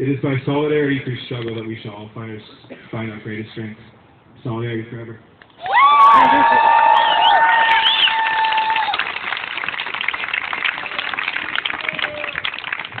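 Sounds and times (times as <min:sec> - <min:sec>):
crowd cheering and whooping: 0:05.6 - 0:09.4, 0:10.7 - 0:12.6
applause: 0:05.6 - 0:13.0.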